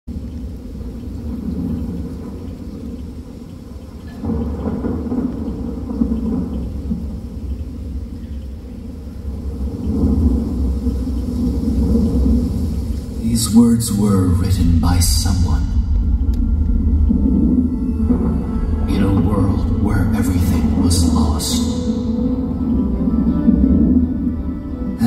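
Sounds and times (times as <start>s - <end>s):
deep rumble over loudspeakers: 0.1s - 25.0s.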